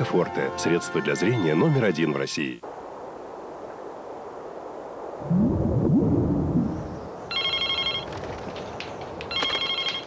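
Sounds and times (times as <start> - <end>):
low rumble: 4.9 - 7.3
mobile phone ringing: 7.3 - 8.1, 9.3 - 10.0.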